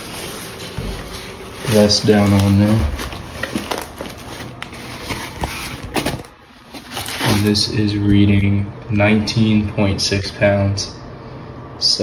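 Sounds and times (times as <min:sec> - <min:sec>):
fabric rustling: 0:00.0 - 0:07.3.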